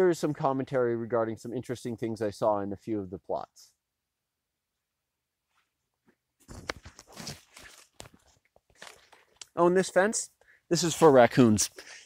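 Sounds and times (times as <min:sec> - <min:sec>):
footsteps crunching among corn stalks: 0:06.4 - 0:09.9, 0:10.8 - 0:11.6
leaves brushing: 0:06.5 - 0:09.4.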